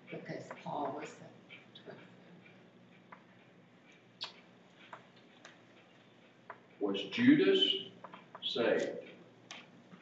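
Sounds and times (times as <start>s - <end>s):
faint sharp clicks: 4.2s - 5.6s.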